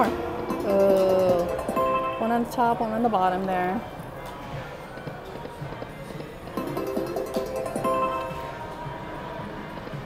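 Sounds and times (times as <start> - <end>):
slot machine game music: 0.0 - 3.2, 6.6 - 8.7
slot machine reels spinning: 0.5 - 2.8, 6.6 - 8.6.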